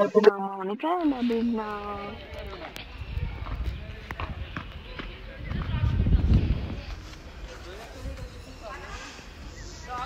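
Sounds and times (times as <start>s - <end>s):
low wind rumble: 1.8s - 10.0s.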